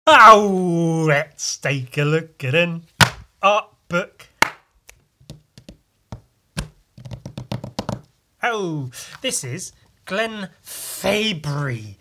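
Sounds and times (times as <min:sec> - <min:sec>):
hands tapping a sketchbook: 0:05.2 - 0:08.1.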